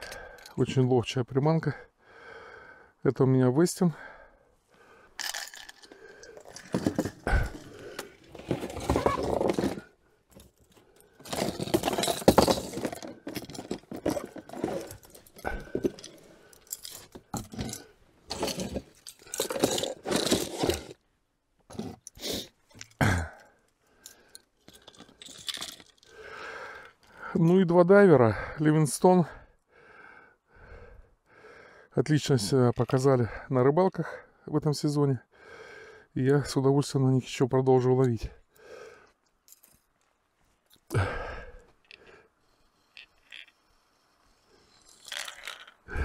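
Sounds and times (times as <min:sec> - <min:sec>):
fishing tackle rustling and clicking: 0:05.2 - 0:21.0, 0:21.7 - 0:27.2, 0:39.2 - 0:40.9, 0:41.7 - 0:46.0.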